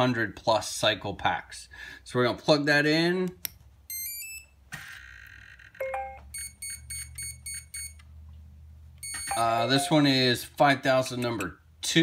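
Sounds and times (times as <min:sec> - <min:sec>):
quick electronic beeps: 0:09.0 - 0:10.0.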